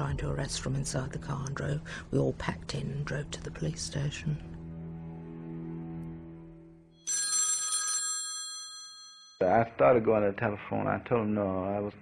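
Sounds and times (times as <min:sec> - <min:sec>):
telephone bell ringing: 0:07.0 - 0:09.4.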